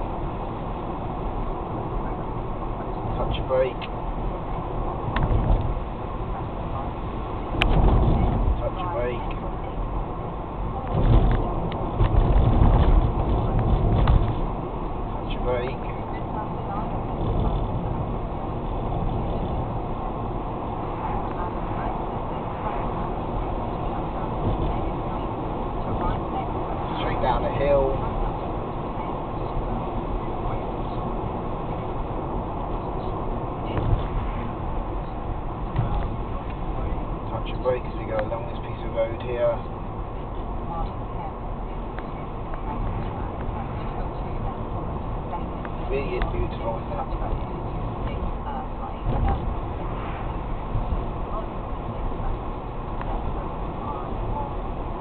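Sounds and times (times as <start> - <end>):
car road and engine noise: 0.0 - 55.0
low rumbles: 0.0 - 55.0.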